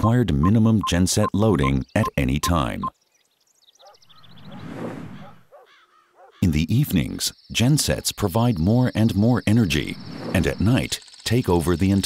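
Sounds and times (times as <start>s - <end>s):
high bird chirps: 1.2s - 6.4s
whoosh with low hum: 4.2s - 5.4s, 9.4s - 10.9s.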